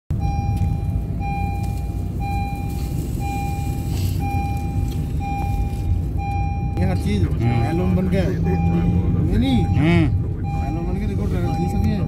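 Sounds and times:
car engine and road rumble: 0:00.1 - 0:12.0
electronic warning beep: 0:00.2 - 0:12.0.

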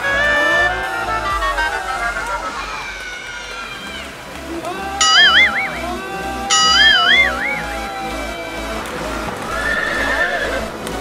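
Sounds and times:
horse whinnying: 0:09.5 - 0:10.7.

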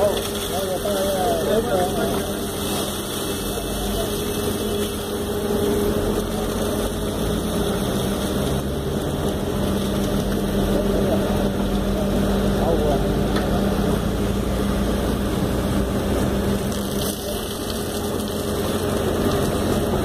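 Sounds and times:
diesel engine running: 0:00.0 - 0:20.0
hydraulic arm lifting bucket: 0:00.0 - 0:20.0.

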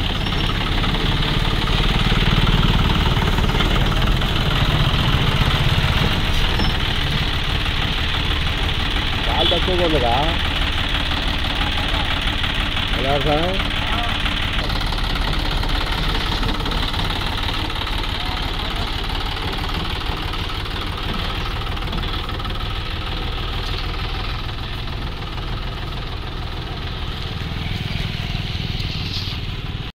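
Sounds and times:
tractor diesel engine under load: 0:00.0 - 0:29.9.

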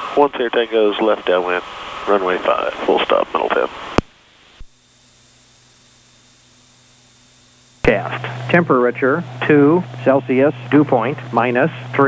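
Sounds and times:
radio hiss: 0:00.0 - 0:12.0
steady low hum: 0:00.0 - 0:12.0.

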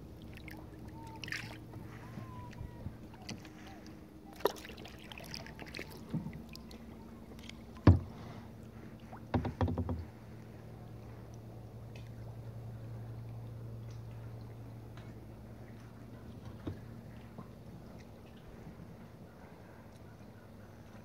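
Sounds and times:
low steady hum: 0:00.0 - 0:21.0
hollow knocks on boat hull: 0:07.8 - 0:08.2, 0:09.2 - 0:10.1.

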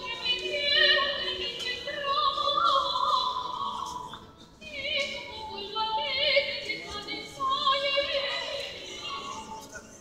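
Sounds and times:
woman singing opera: 0:00.0 - 0:09.6.

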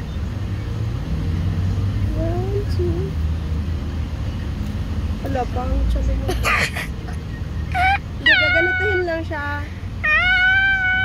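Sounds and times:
high-pitched vocal cries: 0:07.7 - 0:09.2, 0:10.0 - 0:11.0.

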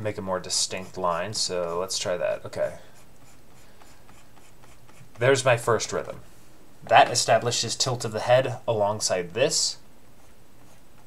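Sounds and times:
stylus scratching drawing tablet: 0:00.4 - 0:05.4, 0:10.2 - 0:11.0.

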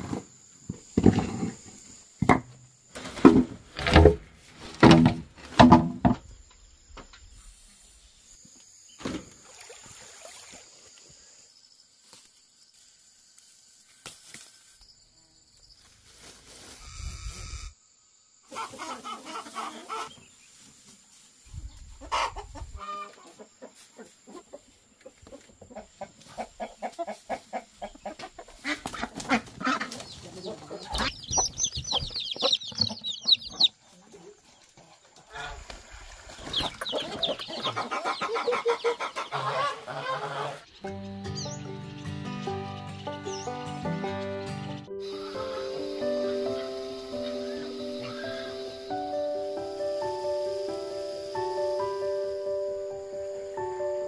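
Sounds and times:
chickens clucking and squawking: 0:18.4 - 0:41.6, 0:44.1 - 0:54.0
melodic music: 0:40.8 - 0:54.0.

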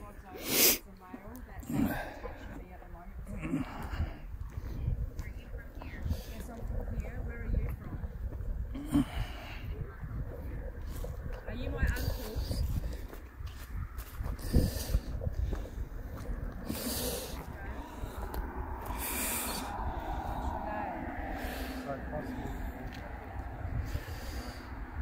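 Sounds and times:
faint voices: 0:00.0 - 0:25.0
handling rumble on microphone: 0:01.9 - 0:25.0
breathy hiss: 0:18.8 - 0:22.8.

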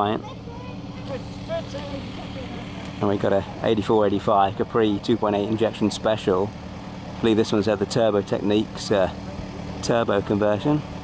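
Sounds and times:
distant voices chattering: 0:00.0 - 0:11.0.

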